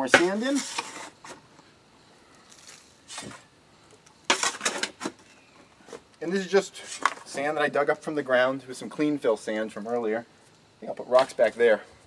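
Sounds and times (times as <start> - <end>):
shovel scraping sand: 0.0 - 1.4.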